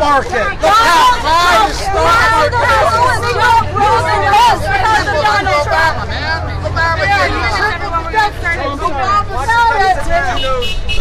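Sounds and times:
people arguing loudly: 0:00.0 - 0:11.0.

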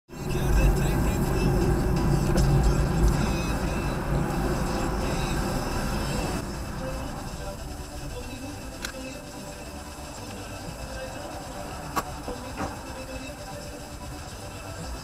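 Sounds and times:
car road and engine rumble: 0:00.1 - 0:15.0.

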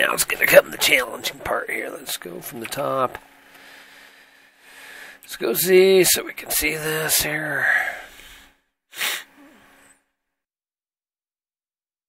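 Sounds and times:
sharp breath noise: 0:03.5 - 0:05.2, 0:07.6 - 0:09.9.

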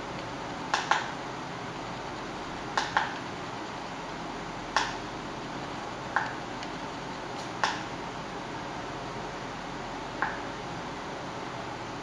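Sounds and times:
steady hiss: 0:00.0 - 0:12.0
computer mouse clicking: 0:00.1 - 0:01.2, 0:02.1 - 0:03.3, 0:04.7 - 0:05.0, 0:06.1 - 0:07.9.

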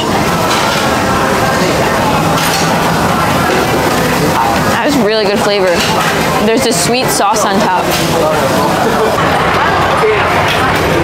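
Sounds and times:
indistinct crowd chatter: 0:00.0 - 0:11.0.

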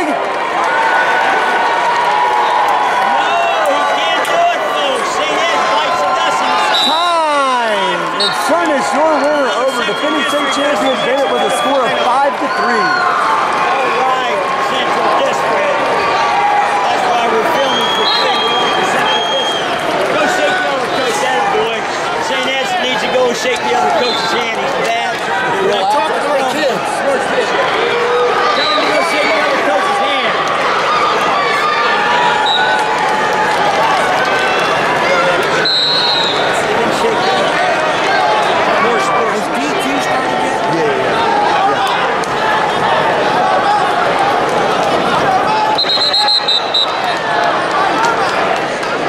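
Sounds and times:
crowd chatter: 0:00.0 - 0:49.0.

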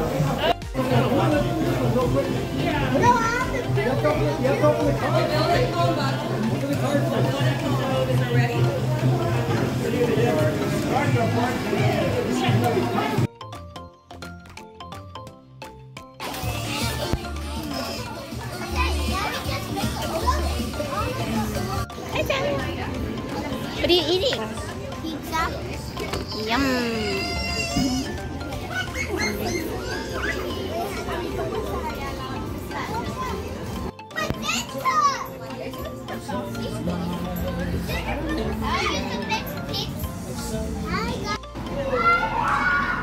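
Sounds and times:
young children talking and calling: 0:00.0 - 0:13.3, 0:16.2 - 0:43.0
background music: 0:00.0 - 0:43.0
children's high-pitched cries: 0:16.3 - 0:20.6, 0:26.1 - 0:31.4, 0:41.7 - 0:43.0.

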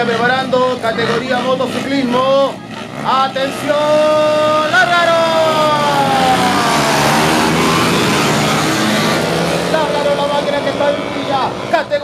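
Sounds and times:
dirt motorcycles accelerating: 0:00.0 - 0:12.0.

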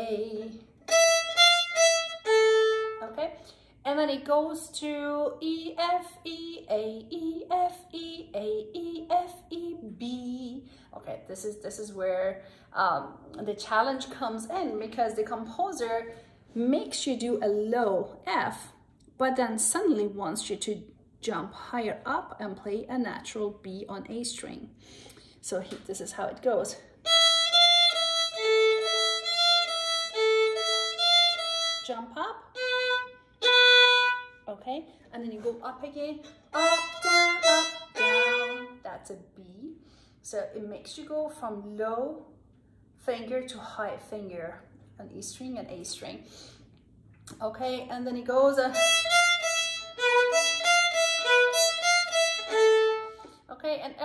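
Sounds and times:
solo violin bowed notes: 0:00.0 - 0:03.2, 0:27.0 - 0:34.4, 0:36.5 - 0:38.9, 0:48.7 - 0:53.4.

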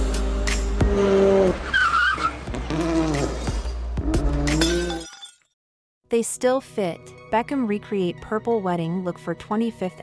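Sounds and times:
sound-effect jingle: 0:04.6 - 0:05.4.

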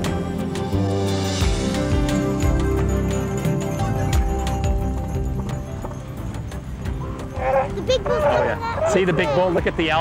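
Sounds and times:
background music: 0:00.0 - 0:10.0
elephant seal low call: 0:07.3 - 0:08.9.

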